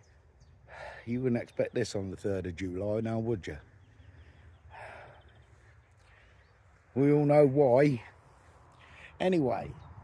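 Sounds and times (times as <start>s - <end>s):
man breathing out: 4.7s - 5.4s.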